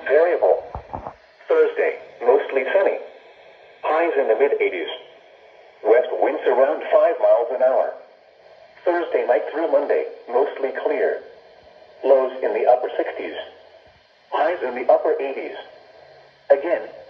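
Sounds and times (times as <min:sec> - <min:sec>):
automated voice through small speaker: 0:00.0 - 0:05.2, 0:05.8 - 0:08.1, 0:08.8 - 0:11.4, 0:12.0 - 0:13.7, 0:14.3 - 0:17.0.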